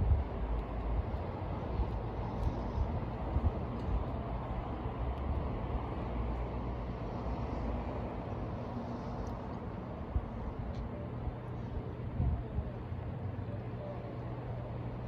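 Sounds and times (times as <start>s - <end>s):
low outdoor rumble: 0.0s - 15.0s.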